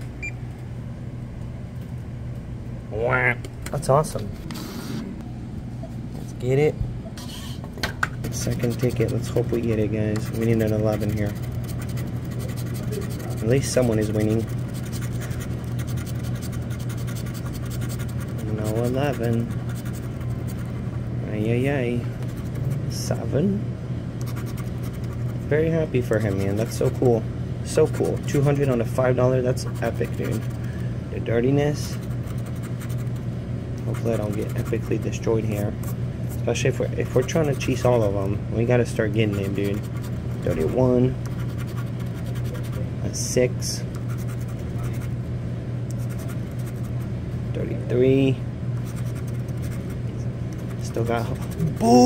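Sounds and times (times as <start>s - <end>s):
low steady hum: 0.0s - 52.0s
pencil scratching lottery ticket: 8.3s - 20.7s, 24.2s - 25.2s, 26.1s - 27.2s, 27.8s - 28.9s, 29.6s - 30.6s, 31.8s - 33.2s, 33.9s - 35.2s, 39.2s - 42.8s, 44.0s - 45.1s, 46.0s - 47.0s, 48.8s - 50.0s, 50.6s - 51.8s.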